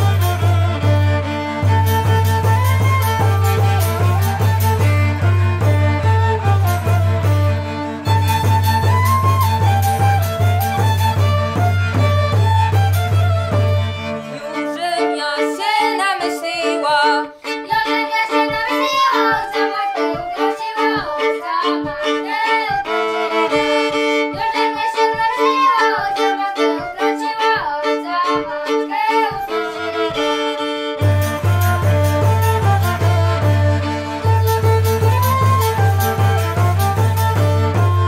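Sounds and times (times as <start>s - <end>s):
frame drum tapping: 0.0s - 14.0s, 31.0s - 38.0s
low bowed bass: 0.0s - 14.8s, 29.8s - 38.0s
flute: 0.0s - 17.6s, 18.4s - 38.0s
fiddle: 0.0s - 38.0s.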